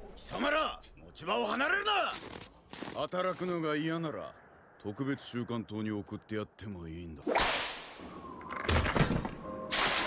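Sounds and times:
whip crack: 7.3s - 8.0s.

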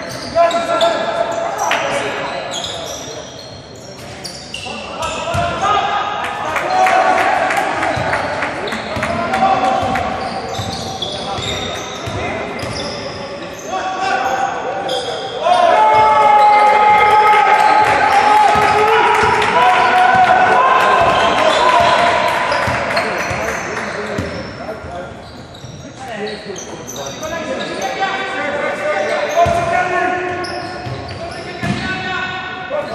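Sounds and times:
shoe squeaks: 0.0s - 5.4s, 9.8s - 15.5s, 22.5s - 28.2s, 28.9s - 31.8s
players shouting: 4.7s - 11.8s, 13.6s - 23.7s.

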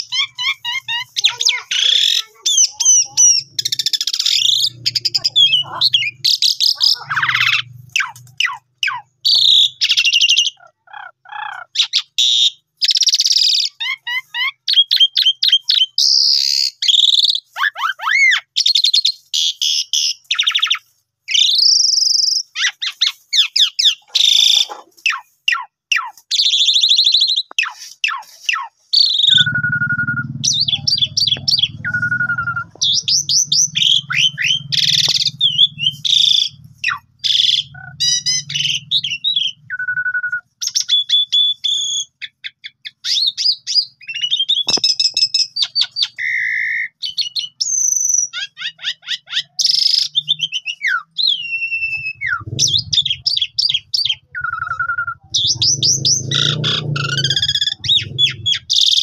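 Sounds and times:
starling singing: 0.0s - 59.0s.

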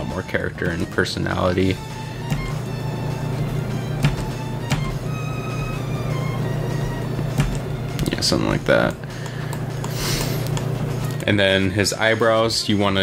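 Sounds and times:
background music with held tones: 0.0s - 13.0s.

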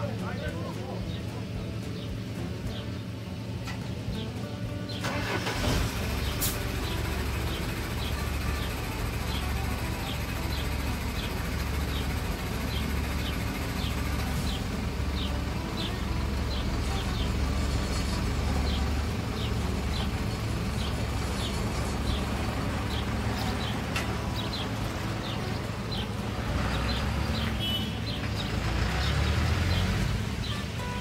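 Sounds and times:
diesel truck engine starting and idling: 0.0s - 31.0s.

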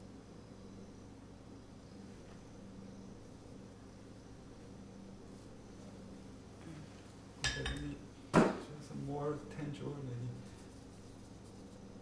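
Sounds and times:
ceramic dishware clinking: 7.4s - 7.9s.

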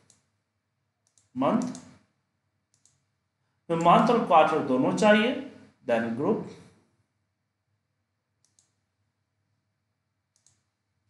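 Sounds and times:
computer mouse clicks: 0.0s - 0.4s, 1.0s - 2.1s, 2.7s - 3.1s, 8.4s - 8.9s, 10.3s - 10.8s.

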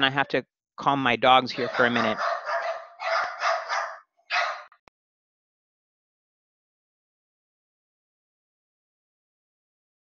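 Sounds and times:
dogs barking and yipping: 1.5s - 4.8s.

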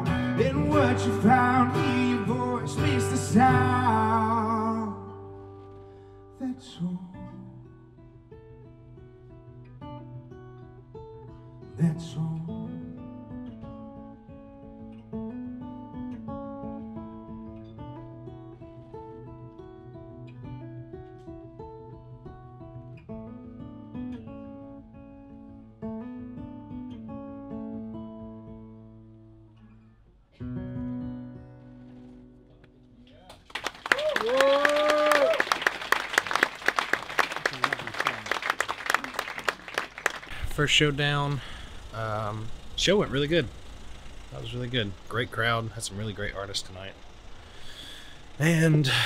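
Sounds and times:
solo acoustic guitar: 0.0s - 33.2s, 38.5s - 49.0s
audience applause: 33.3s - 41.9s
crowd whooping: 33.5s - 40.5s.

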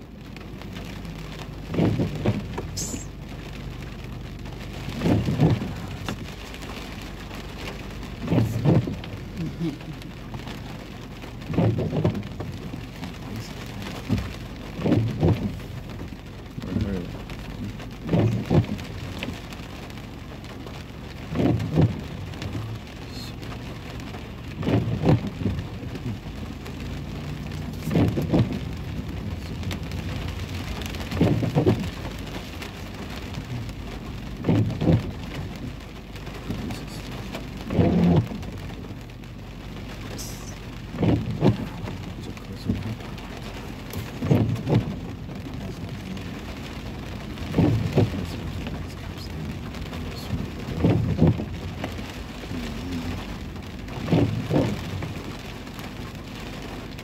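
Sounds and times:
rain on car windshield: 0.0s - 57.0s
windshield wipers thumping: 0.0s - 57.0s.

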